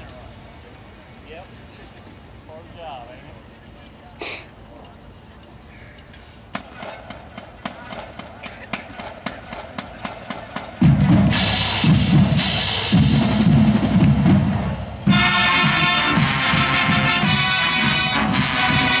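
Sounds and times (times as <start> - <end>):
marching band playing: 6.5 - 19.0
brass section playing loud: 10.8 - 19.0.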